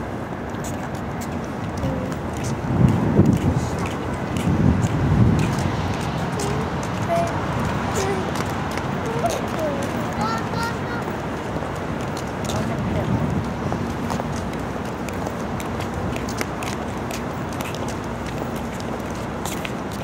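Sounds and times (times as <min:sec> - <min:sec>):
distant voices: 0:00.0 - 0:20.0
road traffic noise: 0:00.0 - 0:20.0.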